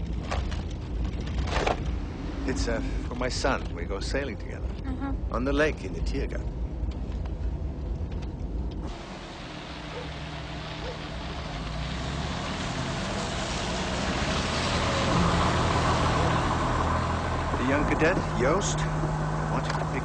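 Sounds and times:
car engine rumbling: 0:00.0 - 0:20.0
tyres hissing on wet road: 0:08.8 - 0:20.0.

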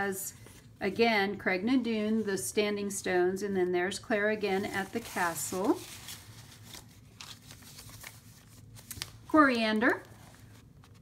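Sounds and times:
paper page rustling: 0:04.5 - 0:11.0.

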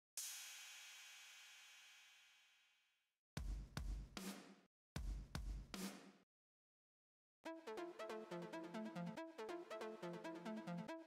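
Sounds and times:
drum-kit phrases with bass drum: 0:03.4 - 0:06.1.

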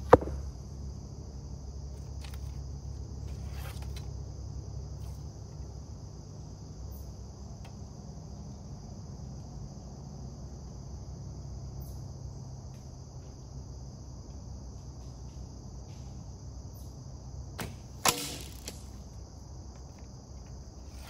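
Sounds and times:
insect chorus trilling: 0:00.0 - 0:21.0.

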